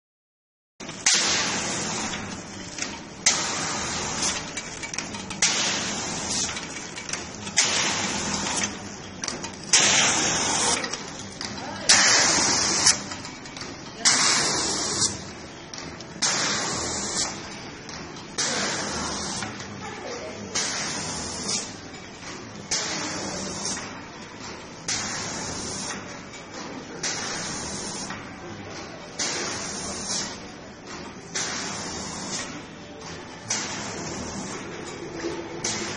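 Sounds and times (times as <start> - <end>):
packaging machine clack: 0.8 - 19.8
continuous machine hum: 0.8 - 35.9.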